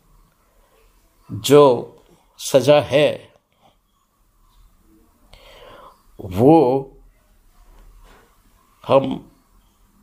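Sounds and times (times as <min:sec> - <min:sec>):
man talking: 0:01.3 - 0:03.4, 0:06.2 - 0:07.0, 0:08.8 - 0:09.4
man breathing in softly: 0:05.3 - 0:06.1.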